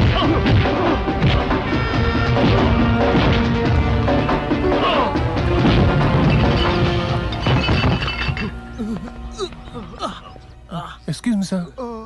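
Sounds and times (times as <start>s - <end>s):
punch and hit sound effects: 0.0s - 1.7s, 2.3s - 4.2s, 5.6s - 6.3s
action background music: 0.0s - 9.9s.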